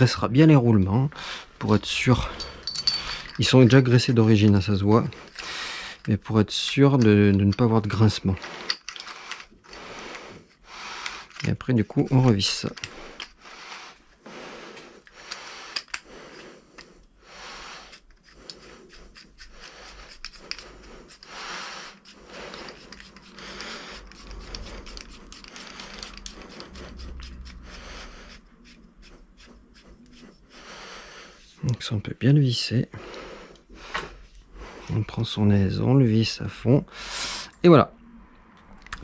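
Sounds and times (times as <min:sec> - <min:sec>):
small metal clicks and scrapes: 0:02.6 - 0:09.8, 0:10.5 - 0:13.7, 0:15.0 - 0:17.1, 0:17.9 - 0:28.4.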